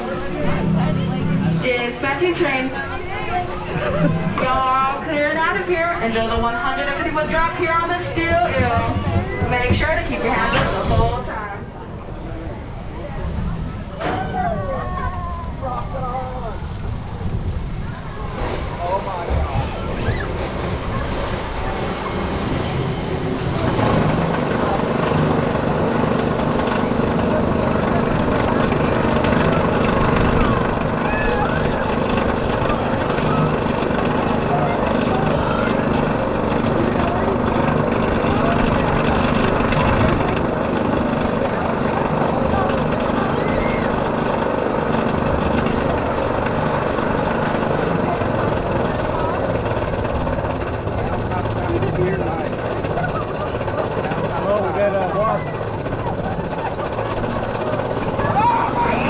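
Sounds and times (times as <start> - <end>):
roller coaster lift chain clatter: 0.0 - 59.0.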